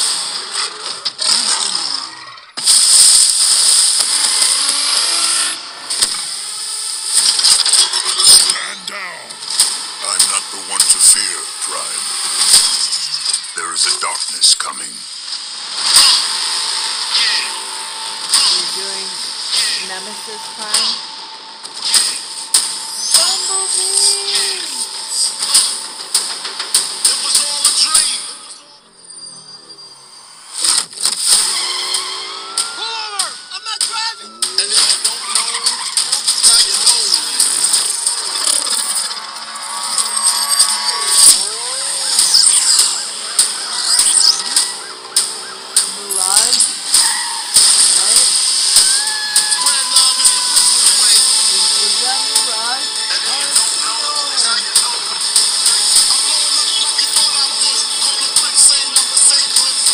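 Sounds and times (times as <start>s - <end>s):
tyres squealing: 7.4s - 10.4s
gliding mechanical sound effects: 34.6s - 58.5s.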